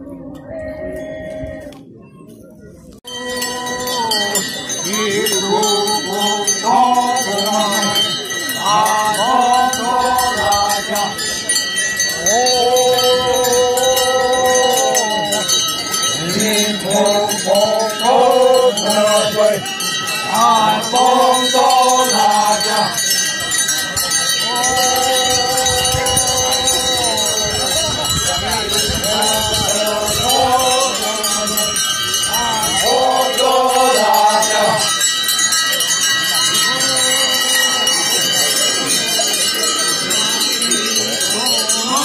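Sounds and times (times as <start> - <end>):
men singing together: 3.1 - 11.4, 12.1 - 23.2, 24.4 - 35.0, 36.5 - 38.3, 41.2 - 42.0.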